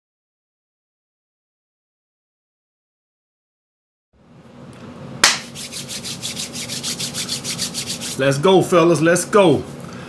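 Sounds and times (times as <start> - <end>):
sharp hand clap: 5.2 - 5.8
hands rubbing together: 5.2 - 8.4.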